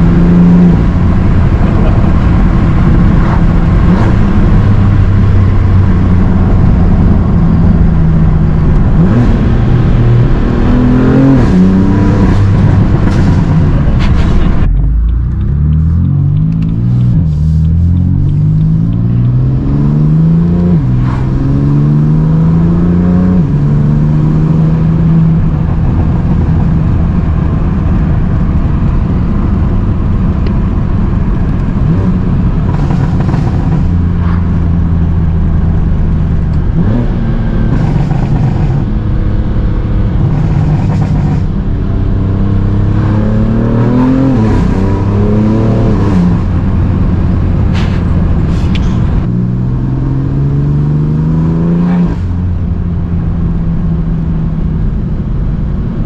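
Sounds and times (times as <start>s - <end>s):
car engine accelerating with upshifts: 0.0s - 56.0s.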